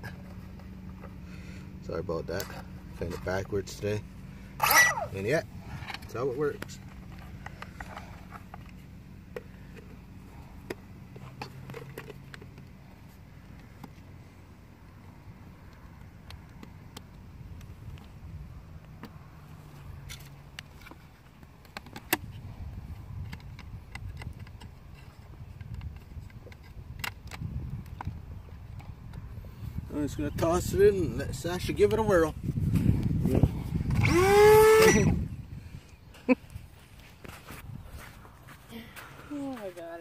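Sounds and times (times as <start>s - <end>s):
steady low rumble: 0.0s - 19.0s, 22.2s - 34.2s.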